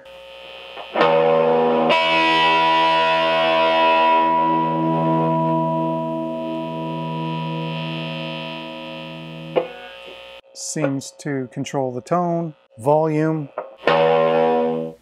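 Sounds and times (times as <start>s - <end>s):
distorted electric guitar chord: 0.0s - 15.0s.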